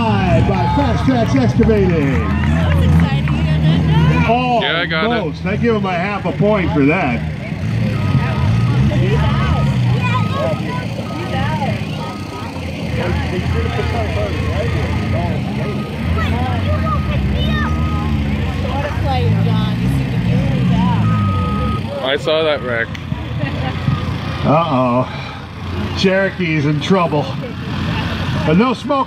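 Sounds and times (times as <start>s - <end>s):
car engines revving: 0.0s - 29.0s
reversing alarm beeping: 7.8s - 9.8s, 11.0s - 11.5s, 16.9s - 18.2s, 20.8s - 22.8s.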